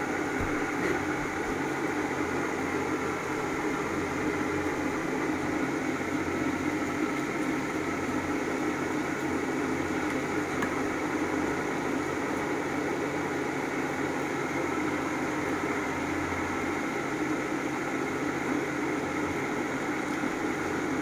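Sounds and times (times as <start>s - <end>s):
machine motor humming and whirring: 0.0s - 21.0s.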